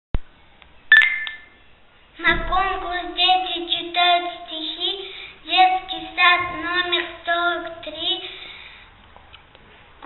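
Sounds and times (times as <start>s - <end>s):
short electronic beep: 0.8s - 1.7s.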